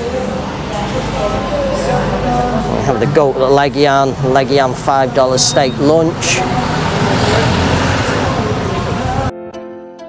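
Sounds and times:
road traffic: 0.0s - 9.3s.

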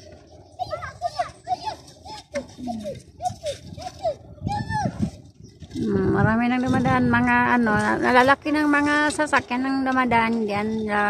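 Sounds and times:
child calling and squealing: 0.6s - 5.1s.

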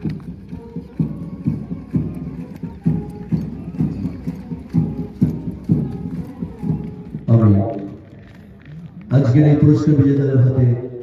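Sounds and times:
steady drum beat: 0.0s - 7.3s
parade band playing march: 0.0s - 8.0s.

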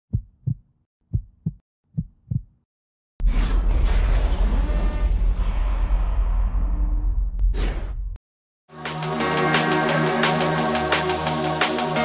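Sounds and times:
heartbeat thumps: 0.1s - 2.6s.

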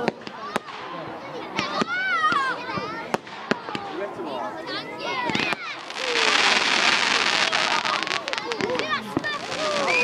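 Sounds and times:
fireworks bangs: 0.0s - 10.0s
people's voices: 0.0s - 10.0s.

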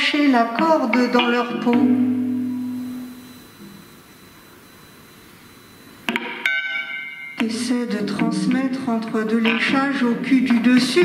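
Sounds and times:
low guitar note: 1.2s - 3.8s
high metallic guitar ring: 6.1s - 7.7s.

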